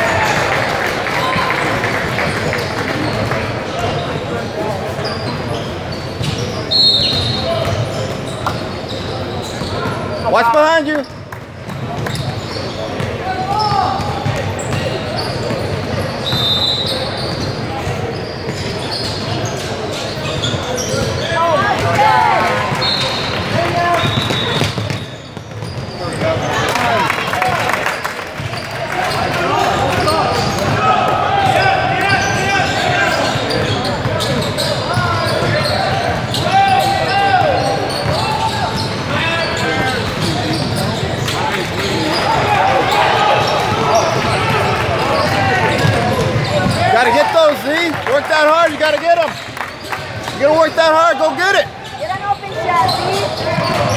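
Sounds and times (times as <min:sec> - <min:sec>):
spectators' voices and shouts: 0:00.0 - 0:25.3, 0:25.9 - 0:53.9.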